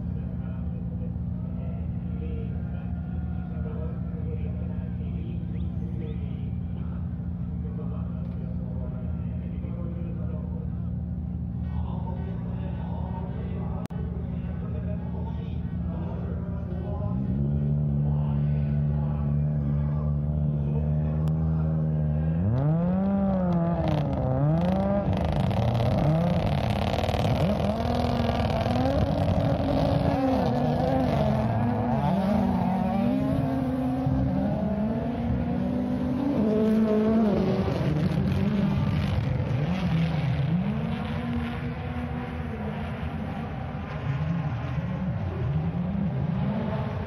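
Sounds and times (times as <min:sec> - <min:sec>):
rally car engine accelerating: 0:00.0 - 0:47.0.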